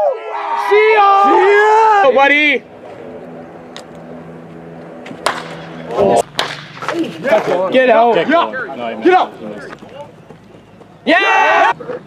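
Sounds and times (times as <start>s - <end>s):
low steady hum: 0.0s - 11.8s
baseball bat cracking ball: 3.7s - 7.8s.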